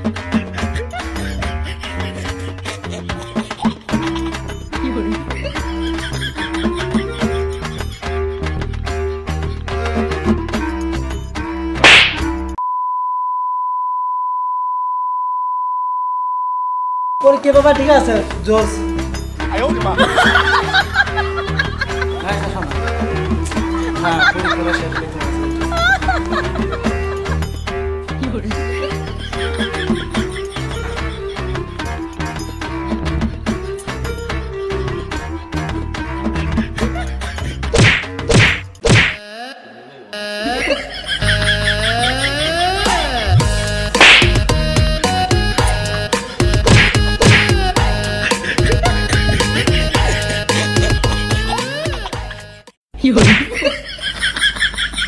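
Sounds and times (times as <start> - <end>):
background music: 0.0 - 12.6, 17.2 - 52.8
loud slaps: 11.8 - 12.3, 37.7 - 39.2, 44.0 - 44.4, 46.6 - 47.6, 53.2 - 53.6
long steady electronic beep: 12.6 - 17.2.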